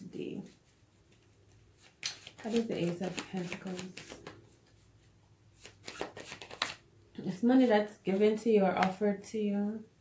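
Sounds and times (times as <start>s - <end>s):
playing cards shuffling: 1.1s - 5.0s, 5.6s - 6.8s.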